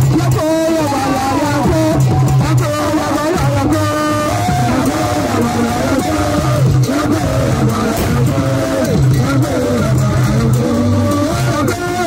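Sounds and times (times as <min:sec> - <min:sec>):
drumming for dance: 0:00.0 - 0:12.0.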